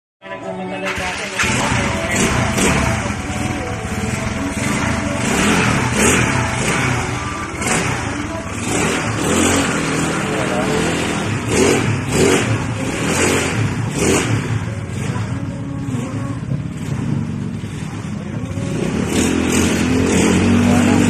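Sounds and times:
scooter engine revving: 0.8 - 21.0.

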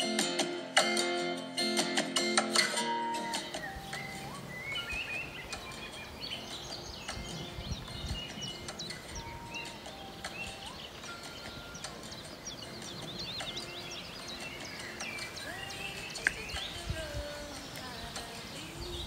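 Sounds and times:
songbirds singing: 3.0 - 19.0.

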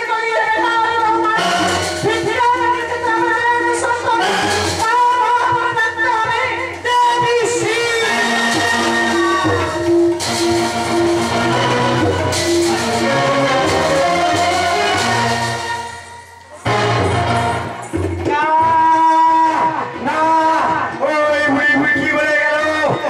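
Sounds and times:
sustained bass notes: 8.1 - 18.2.

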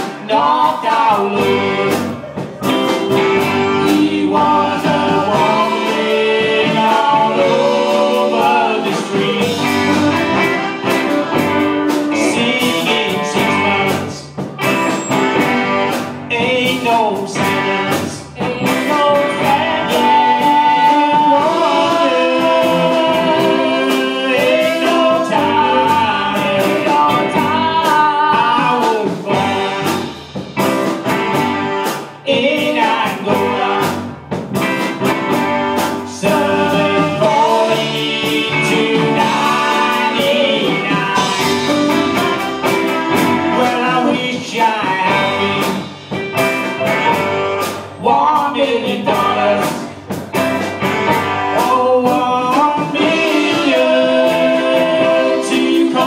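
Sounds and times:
electric guitars: 0.0 - 56.0.

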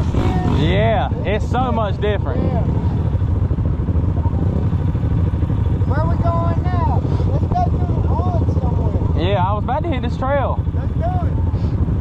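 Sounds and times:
atv engine running: 0.0 - 12.0.

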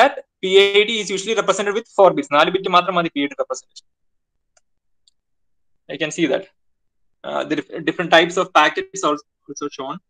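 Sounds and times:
person speaking: 0.0 - 3.9, 7.2 - 10.0
faint clicks: 4.5 - 5.3.

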